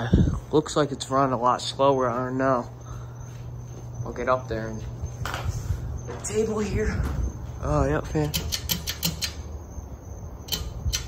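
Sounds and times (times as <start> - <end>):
pull-chain switch clicking: 8.2 - 9.4.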